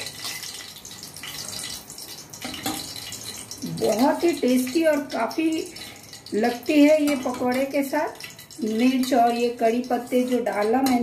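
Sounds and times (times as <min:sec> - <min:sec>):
hot oil sizzling and crackling: 0:00.0 - 0:11.0.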